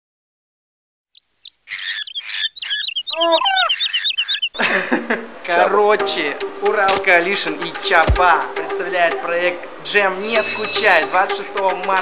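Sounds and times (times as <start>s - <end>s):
high-pitched bird-like chirps: 1.1s - 4.6s.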